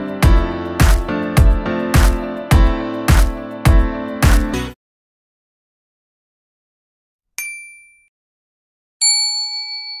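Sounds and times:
bell ding ringing: 0:07.4 - 0:08.1, 0:09.0 - 0:10.0.

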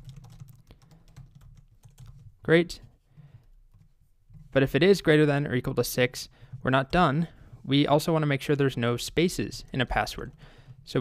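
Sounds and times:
typing on keyboard: 0:00.0 - 0:02.4.

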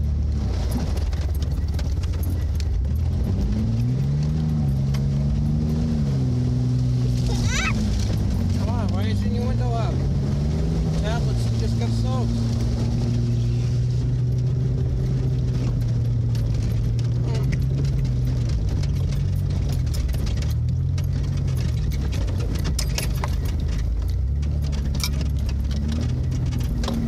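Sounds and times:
vehicle engine running: 0:00.0 - 0:27.0.

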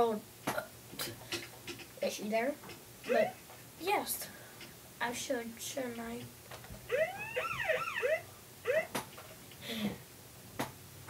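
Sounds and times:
child making siren-like whoops: 0:06.9 - 0:08.9.

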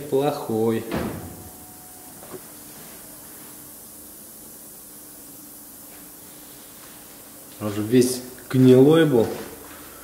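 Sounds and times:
faint hum: 0:00.0 - 0:10.0
low hiss: 0:00.0 - 0:10.0.

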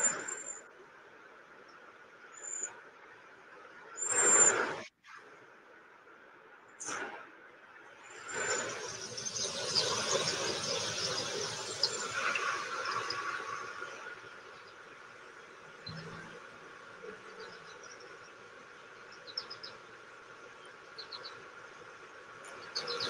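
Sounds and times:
insects chirping: 0:08.0 - 0:16.0
rushing noise: 0:08.1 - 0:15.1.

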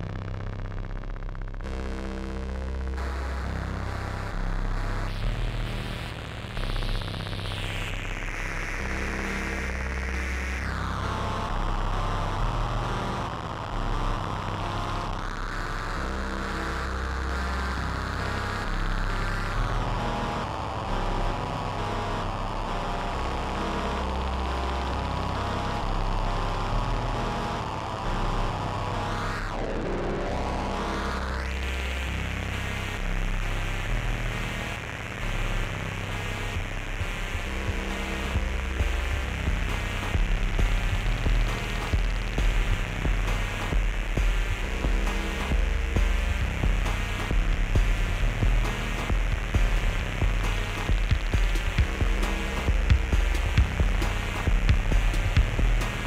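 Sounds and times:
filtered synth sweep: 0:00.0 - 0:56.0
synthesizer electronic music: 0:00.0 - 0:56.0.

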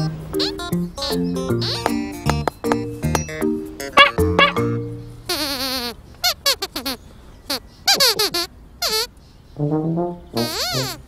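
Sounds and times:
high puppet squeaks: 0:04.0 - 0:09.2, 0:10.4 - 0:11.0.

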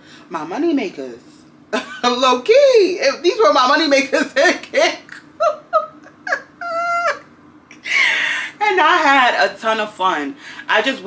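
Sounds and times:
woman laughing: 0:01.8 - 0:02.2, 0:04.8 - 0:08.6.

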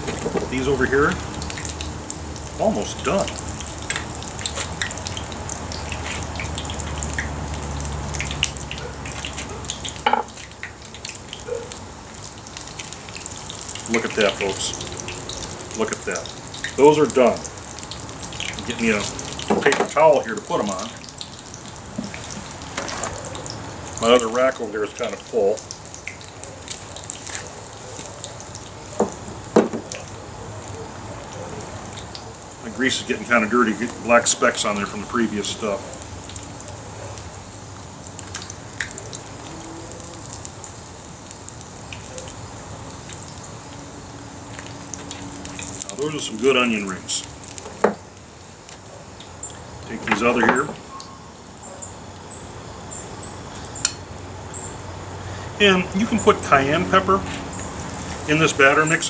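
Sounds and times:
oil sizzling and crackling: 0:00.0 - 0:59.0
sharp knocks: 0:29.0 - 0:29.9.

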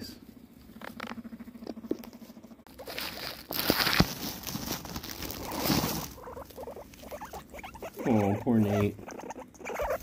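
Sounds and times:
guinea pig calling: 0:02.7 - 0:10.0.

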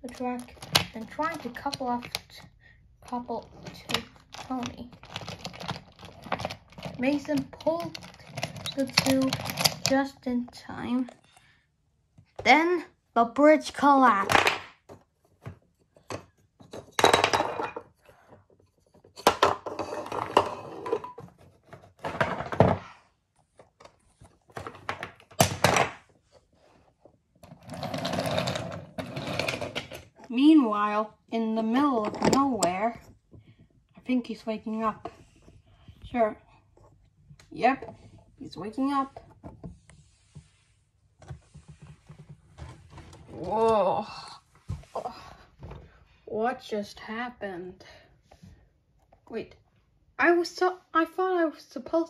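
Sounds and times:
toy trains clattering on wooden floor: 0:03.1 - 0:10.2.

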